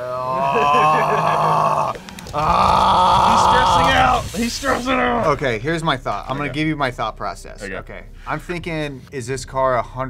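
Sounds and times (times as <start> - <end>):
man groaning loudly: 0.0 - 4.2.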